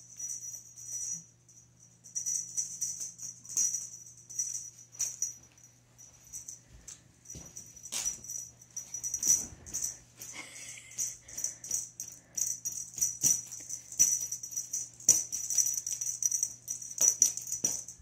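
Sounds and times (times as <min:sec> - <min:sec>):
faint steady hum: 0:00.0 - 0:18.0
small bells jingling: 0:00.0 - 0:18.0.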